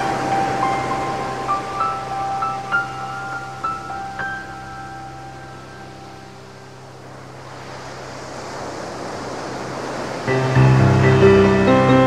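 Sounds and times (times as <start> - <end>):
loud sustained chords: 0.0 - 7.2, 10.3 - 12.0
noise wash like surf: 0.0 - 12.0.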